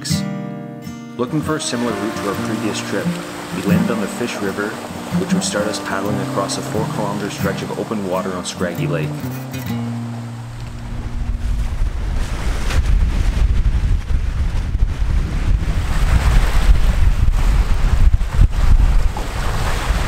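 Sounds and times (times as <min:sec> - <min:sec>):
music track: 0:00.0 - 0:10.4
waves washing onto shore: 0:01.3 - 0:20.0
wind buffeting microphone: 0:01.8 - 0:20.0.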